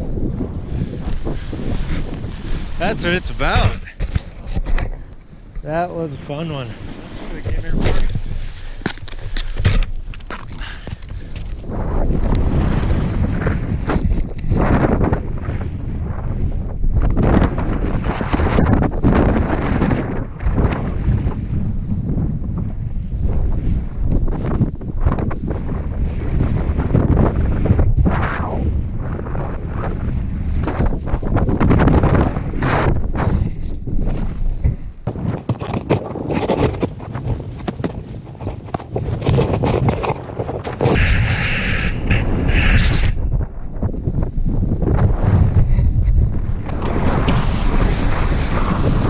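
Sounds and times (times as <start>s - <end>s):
snowboard riding through powder: 0.0s - 49.0s
wind buffeting microphone: 0.0s - 49.0s.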